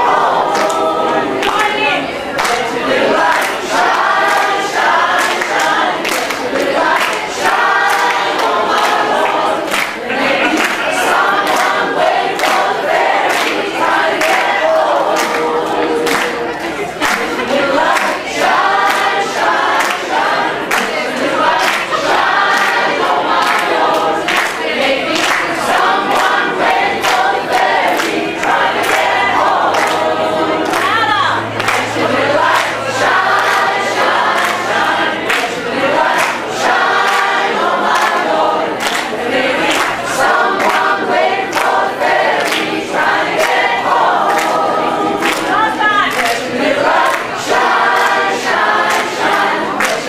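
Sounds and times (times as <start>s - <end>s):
people clapping on the beat: 0.0s - 50.0s
women's choir singing gospel: 0.0s - 50.0s.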